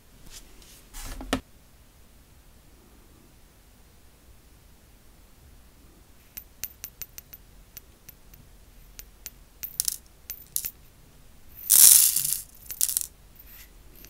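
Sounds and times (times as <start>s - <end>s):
crystals pouring onto plastic tray: 9.8s - 10.7s, 11.7s - 13.1s
light clicks of crystals: 11.7s - 14.0s.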